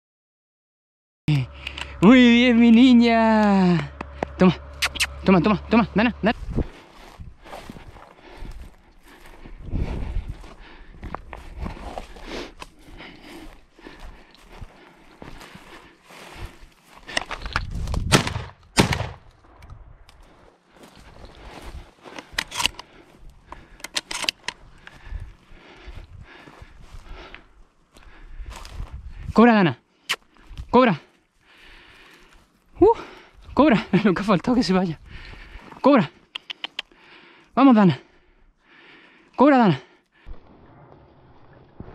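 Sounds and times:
footsteps crunching through scrub: 3.8 - 18.1, 20.1 - 29.3, 30.1 - 37.0
shotgun shots: 18.1 - 19.3.

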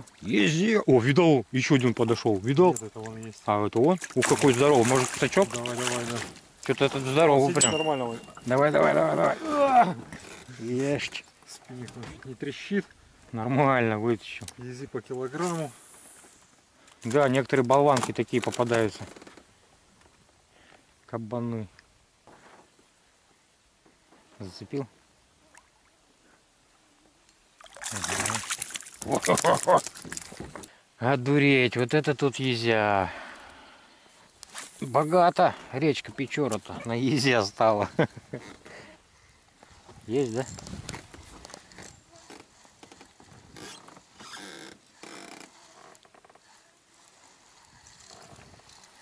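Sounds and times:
fish splashing at water surface: 4.0 - 6.3, 27.6 - 30.4.

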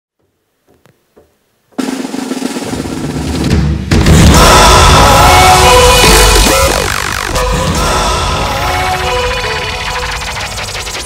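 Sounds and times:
snare drum roll: 1.8 - 4.5.

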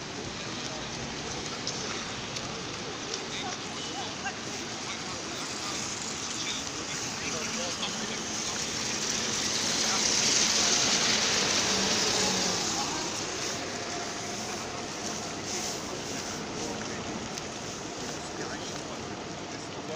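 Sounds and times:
bus driving past on wet road: 0.0 - 19.9.

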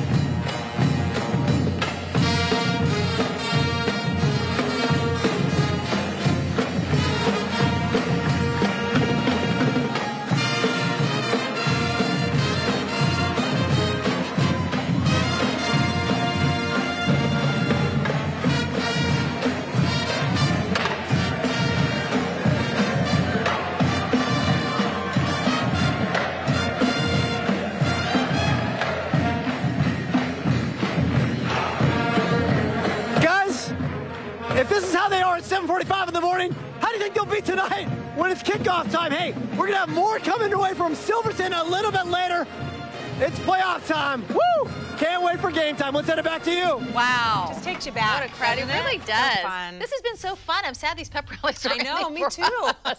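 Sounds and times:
pep band playing: 0.0 - 50.6, 51.5 - 52.9
drumline beat: 0.0 - 52.9.

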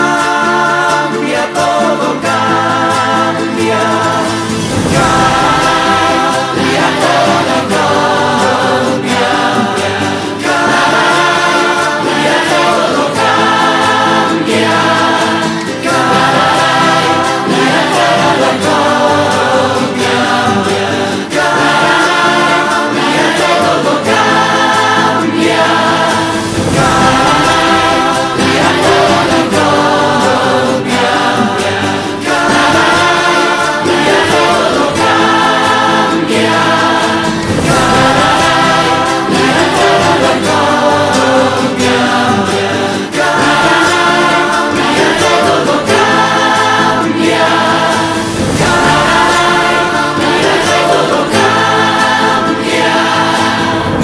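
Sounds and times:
choir singing: 0.0 - 54.0
musical accompaniment: 0.0 - 54.0.

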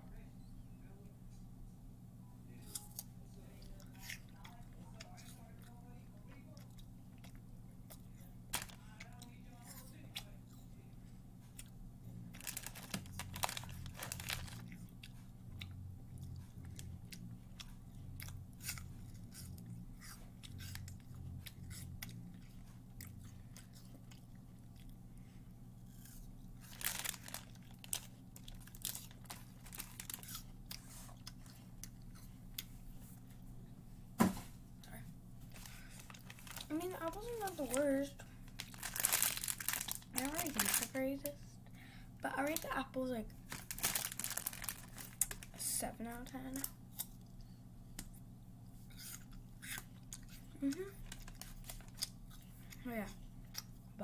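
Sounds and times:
steady low hum: 0.0 - 54.0
chewing and crunching apple: 2.6 - 33.7, 34.8 - 54.0.

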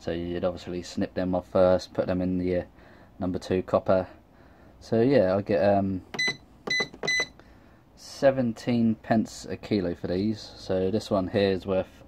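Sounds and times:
high-pitched keypad beeps: 6.1 - 7.3.

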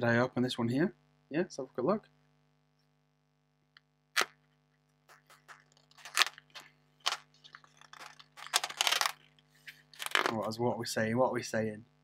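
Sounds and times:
card scraping and rustling: 5.1 - 10.5.

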